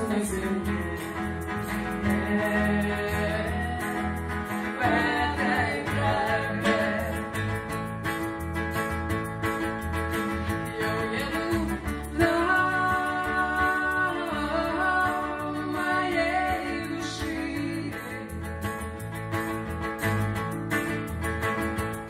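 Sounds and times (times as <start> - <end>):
acoustic guitar: 0.0 - 22.0
electric bass guitar: 0.0 - 22.0
women singing: 2.0 - 7.6, 10.5 - 18.4.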